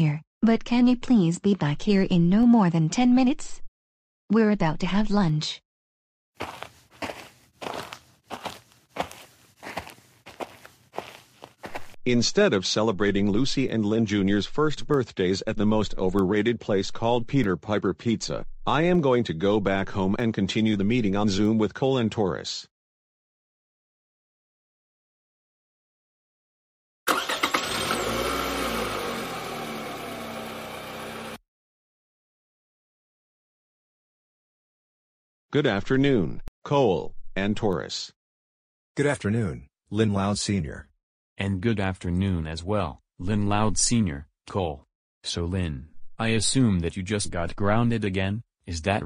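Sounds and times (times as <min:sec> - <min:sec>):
cartoon footsteps: 0:06.4 - 0:12.0
car engine starting and running: 0:27.1 - 0:31.4.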